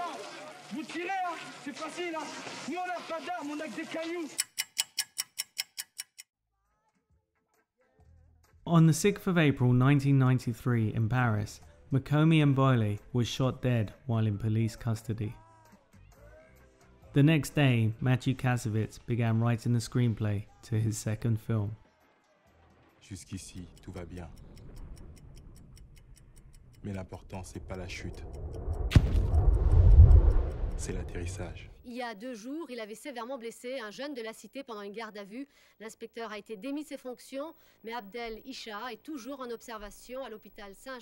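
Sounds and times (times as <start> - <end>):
sharp ticking: 4.4 - 6.3, 23.2 - 31.6
man speaking: 23.0 - 24.3, 26.8 - 28.2, 30.7 - 31.8.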